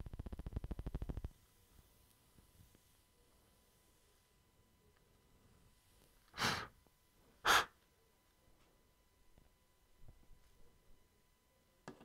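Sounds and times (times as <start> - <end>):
breathy exhale: 6.3 - 6.7, 7.4 - 7.8.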